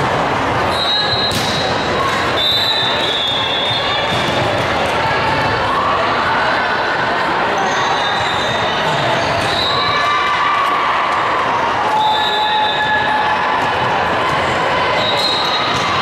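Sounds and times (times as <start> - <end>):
voices of players and spectators: 0.0 - 16.0
volleyballs bouncing and struck: 1.1 - 2.4, 3.7 - 5.6, 15.5 - 16.0.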